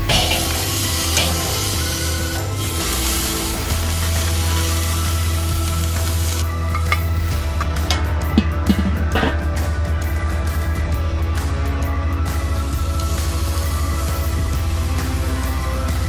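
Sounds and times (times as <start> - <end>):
steaks sizzling on grill: 0.0 - 7.3, 12.7 - 16.0
background music: 0.0 - 16.0.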